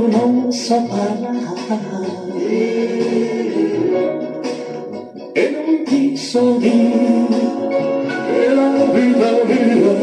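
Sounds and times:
song with sung vocals: 0.0s - 10.0s.

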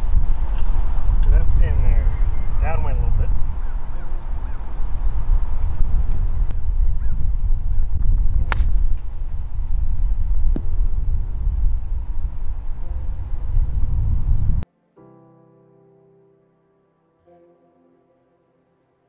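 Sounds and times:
wind rumbling on microphone: 0.0s - 14.6s
sharp click: 8.5s - 8.8s.

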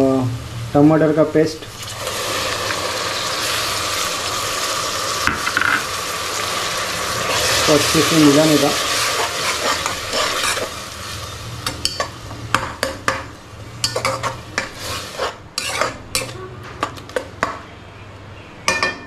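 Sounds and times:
onions sizzling in a pan: 1.6s - 16.4s
spoon scraping and clicking on pan: 13.8s - 17.6s.

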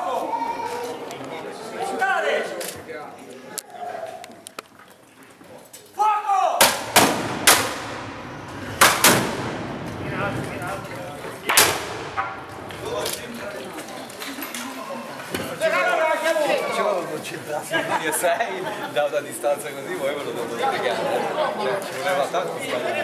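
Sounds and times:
people chattering: 0.0s - 23.0s
man shouting command: 6.0s - 6.6s
musket shots echoing: 6.6s - 10.0s, 11.4s - 12.7s.

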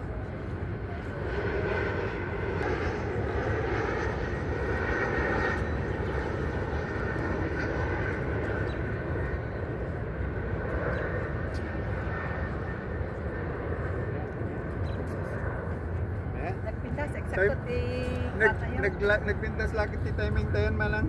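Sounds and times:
aircraft passing overhead: 0.0s - 21.0s.

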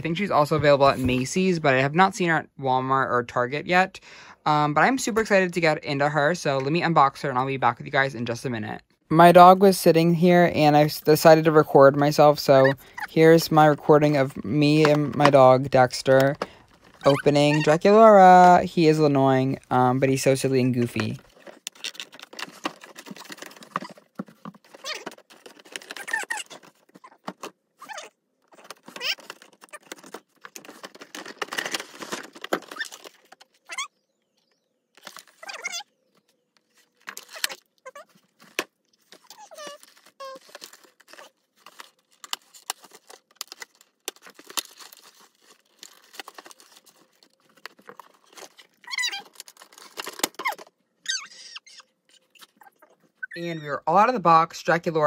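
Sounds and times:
packaging crinkling and tearing: 12.2s - 33.9s, 34.9s - 53.3s.

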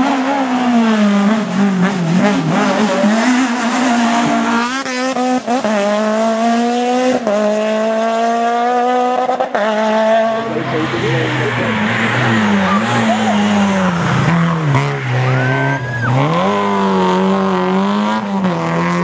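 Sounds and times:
rally car engine at high revs: 0.0s - 19.0s.

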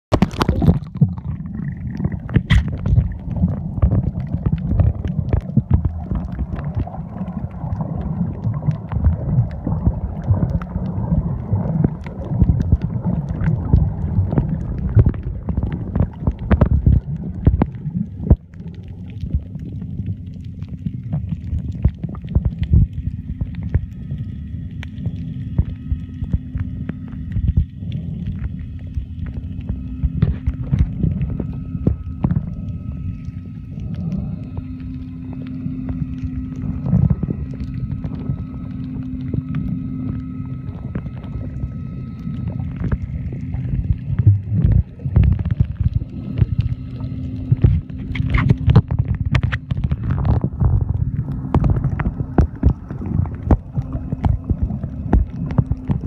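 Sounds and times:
water sloshing underwater: 0.0s - 56.0s
steady low hum: 0.1s - 56.0s.

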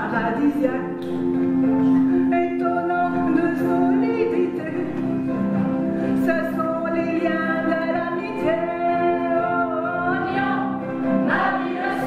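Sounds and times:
instrumental accompaniment: 0.0s - 12.0s
men and women singing in chorus: 6.3s - 12.0s.

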